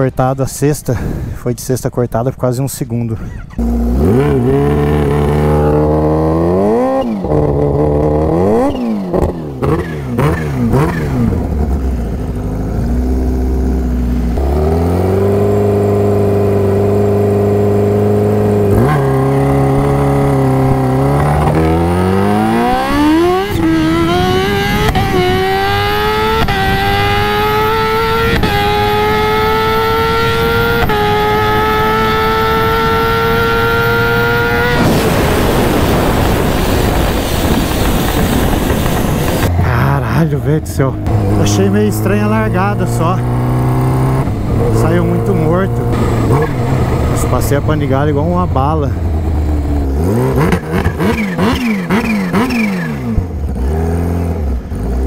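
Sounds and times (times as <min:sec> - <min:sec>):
motorcycle engine revving: 0:03.4 - 0:55.0
motorcycle accelerating through gears: 0:03.5 - 0:55.0.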